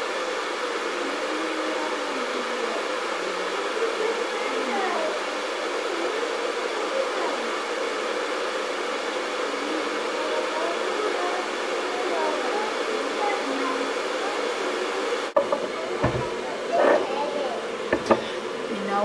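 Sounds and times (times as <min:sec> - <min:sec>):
faint wavering voices: 0:00.0 - 0:19.0.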